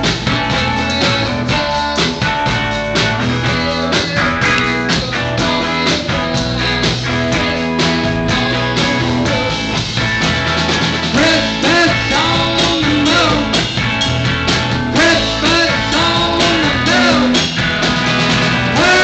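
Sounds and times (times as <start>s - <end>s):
drum kit: 0.0s - 19.0s
electric bass: 0.0s - 19.0s
electric guitar: 0.0s - 19.0s.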